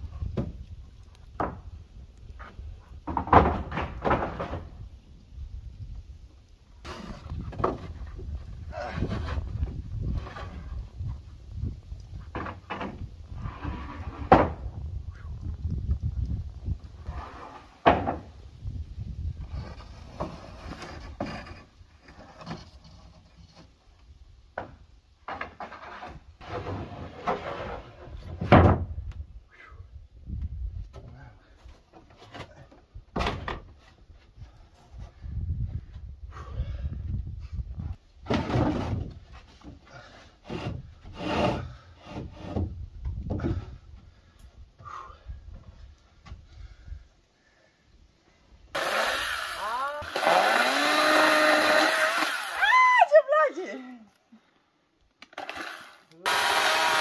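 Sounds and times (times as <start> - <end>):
chainsaw engine revving: 48.8 - 52.6, 55.4 - 57.0.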